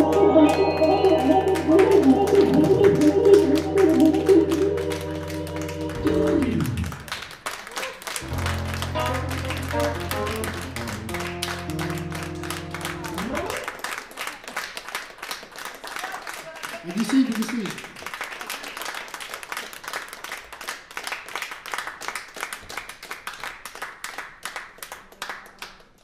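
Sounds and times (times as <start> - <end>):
keyboard and synthesizer music: 0.0 - 7.2, 8.2 - 13.7.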